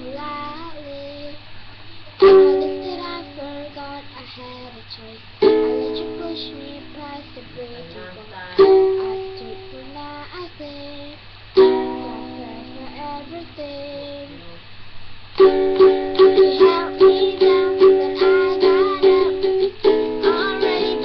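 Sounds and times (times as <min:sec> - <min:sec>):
ukulele strumming chords: 0:00.0 - 0:01.0, 0:02.2 - 0:04.1, 0:05.4 - 0:10.7, 0:11.6 - 0:14.5, 0:15.4 - 0:21.0
girl singing softly: 0:00.0 - 0:21.0.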